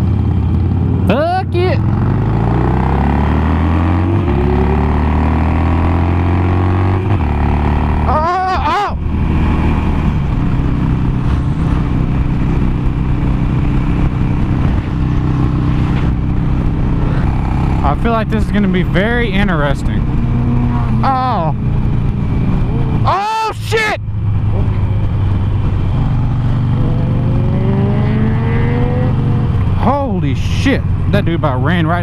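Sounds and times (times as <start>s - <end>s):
motorcycle engine accelerating: 0.0s - 23.4s, 24.0s - 32.0s
wind noise: 2.4s - 23.1s.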